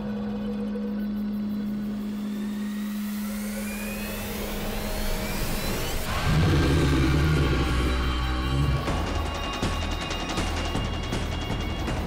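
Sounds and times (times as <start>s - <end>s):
rumbling drone: 0.0s - 12.0s.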